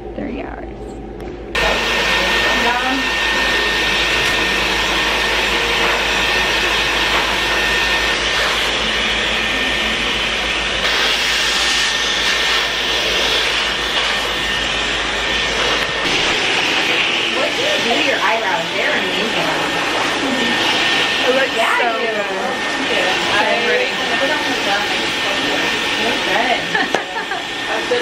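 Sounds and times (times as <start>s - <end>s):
hair dryer blowing: 1.6s - 28.0s.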